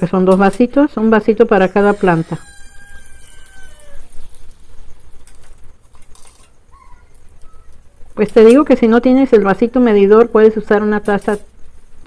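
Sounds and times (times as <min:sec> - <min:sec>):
faint bird chirps: 0:06.5 - 0:08.2.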